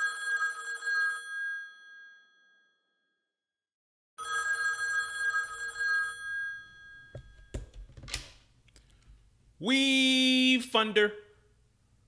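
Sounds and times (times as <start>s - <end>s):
telephone bell ringing: 0.0s - 3.0s, 4.2s - 7.6s.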